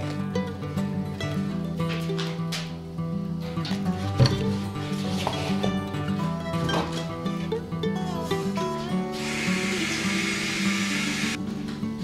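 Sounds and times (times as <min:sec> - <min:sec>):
guitar background music: 0:00.0 - 0:12.0.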